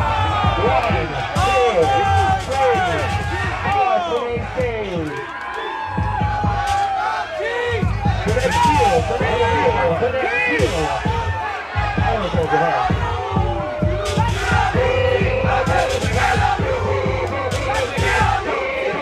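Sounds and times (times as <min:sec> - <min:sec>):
dance beat with heavy bass: 0:00.0 - 0:05.2, 0:05.8 - 0:19.0
crowd shouting and cheering: 0:00.0 - 0:19.0.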